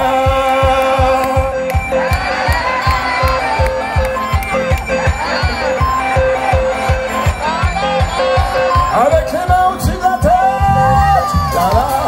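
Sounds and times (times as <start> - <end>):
repeating instrumental melody: 0.0 - 12.0.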